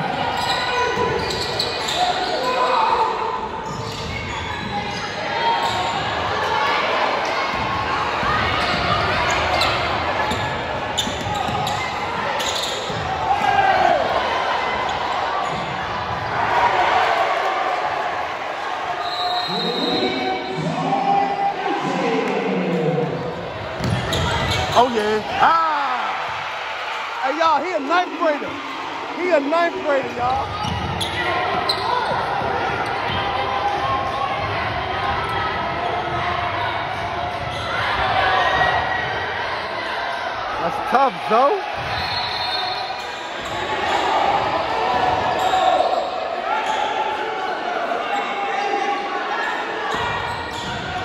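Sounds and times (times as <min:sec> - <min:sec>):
crowd chatter: 0:00.0 - 0:51.0
shoe squeaks: 0:00.3 - 0:02.7, 0:03.6 - 0:05.9, 0:11.0 - 0:12.9, 0:30.5 - 0:32.2.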